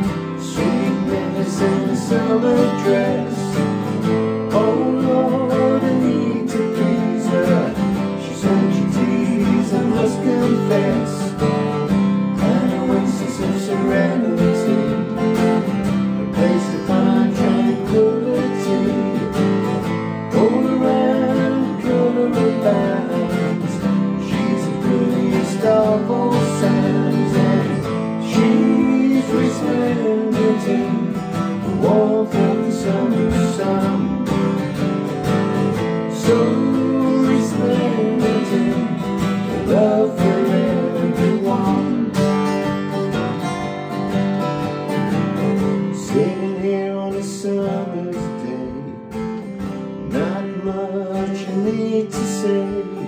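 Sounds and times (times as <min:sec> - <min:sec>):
man singing: 0:00.0 - 0:34.8, 0:35.9 - 0:42.8, 0:45.8 - 0:49.2, 0:50.0 - 0:53.0
acoustic guitars strumming: 0:00.0 - 0:53.0.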